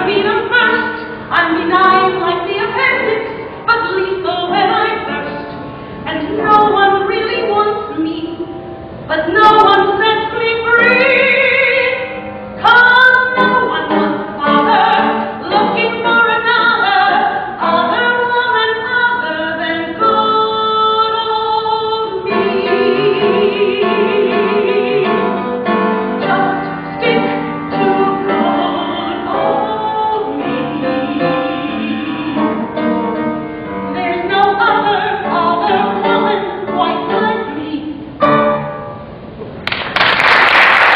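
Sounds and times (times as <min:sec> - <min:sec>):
woman singing: 0:00.0 - 0:05.4, 0:06.1 - 0:08.5, 0:09.1 - 0:25.4, 0:26.2 - 0:32.7, 0:33.9 - 0:38.2
instrumental accompaniment: 0:22.2 - 0:39.6.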